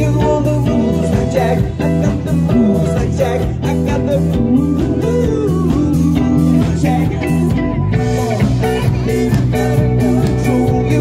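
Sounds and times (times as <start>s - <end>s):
bass guitar: 0.0s - 11.0s
electric guitar bending notes: 0.0s - 11.0s
steady drum beat: 0.0s - 11.0s.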